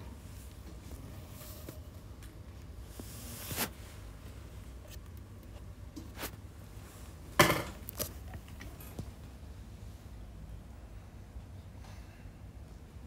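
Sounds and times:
low steady room hum: 0.0 - 13.0.

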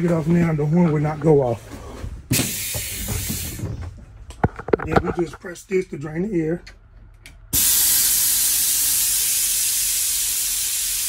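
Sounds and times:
compressed air hissing from bus door: 2.3 - 3.8, 7.5 - 11.0.

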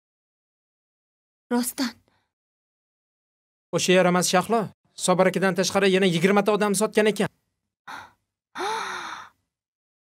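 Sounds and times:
woman sighing: 7.9 - 9.4.

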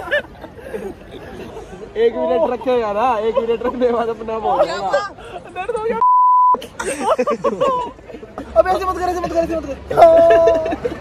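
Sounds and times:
men talking and laughing: 0.0 - 11.0
censor bleep: 6.0 - 6.6.

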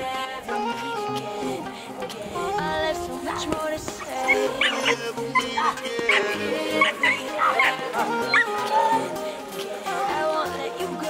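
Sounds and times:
song playing in background: 0.0 - 11.0
puppy yapping: 4.1 - 9.0.

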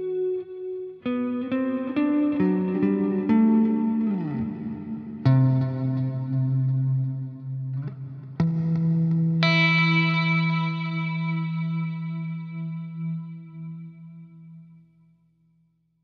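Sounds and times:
electric guitar notes with reverb: 0.0 - 15.0.

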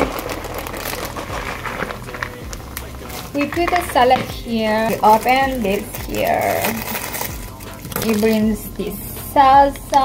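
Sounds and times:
plastic bag crinkling: 0.0 - 8.6.

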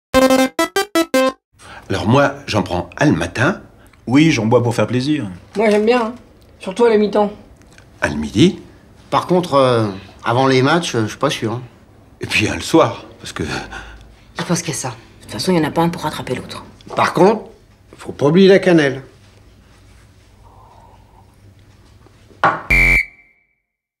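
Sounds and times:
harsh buzzer blast: 0.1 - 1.4, 22.7 - 23.4
synthesizer jingle: 0.2 - 1.4
high tone ringing: 22.7 - 23.6.

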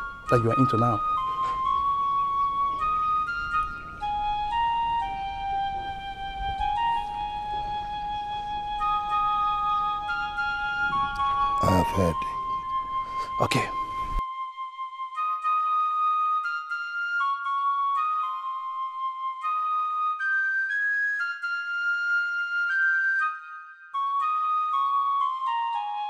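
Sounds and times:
solo flute melody: 0.0 - 26.0.

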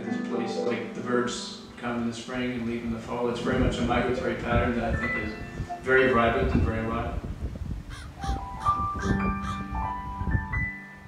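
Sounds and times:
soft piano music: 0.0 - 11.0
crow-like caws: 7.9 - 9.8.

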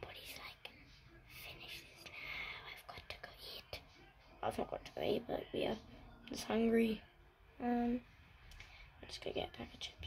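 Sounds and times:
person whispering: 0.0 - 5.8.

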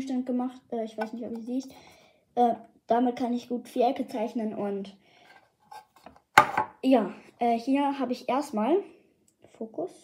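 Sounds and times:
hard object knocking on table: 6.3 - 6.8.

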